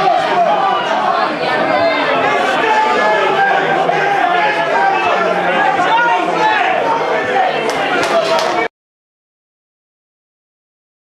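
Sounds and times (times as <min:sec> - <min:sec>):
crowd babble: 0:00.0 - 0:08.7.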